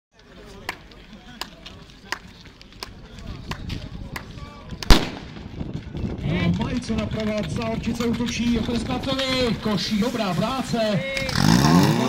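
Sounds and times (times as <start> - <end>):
starting pistol shot: 4.8 - 5.4.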